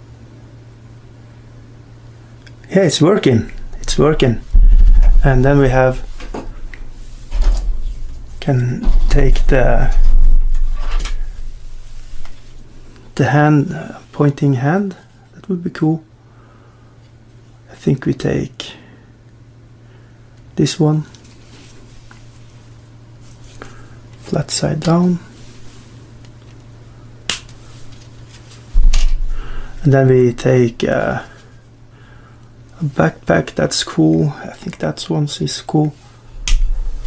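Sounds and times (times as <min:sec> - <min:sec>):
low rumble of handling noise: 0:00.0 - 0:16.2, 0:20.3 - 0:37.0
faint low hum: 0:00.0 - 0:37.0.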